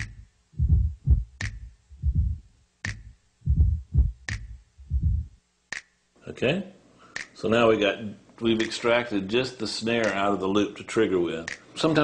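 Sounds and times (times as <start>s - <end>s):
drum loop kick thumps: 0.0s - 5.9s.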